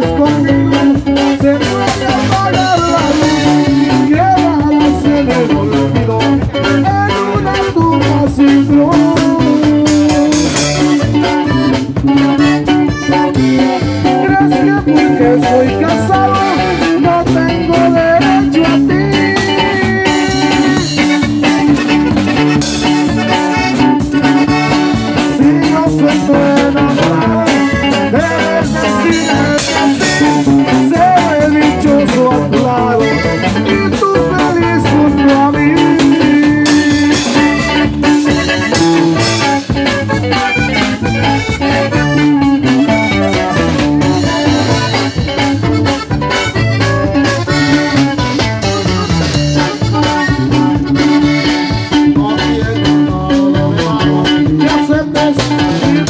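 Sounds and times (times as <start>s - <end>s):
button accordion melody: 0.0s - 56.0s
drum kit beat: 0.0s - 56.0s
electric bass: 0.0s - 56.0s
guitar strumming: 0.0s - 56.0s.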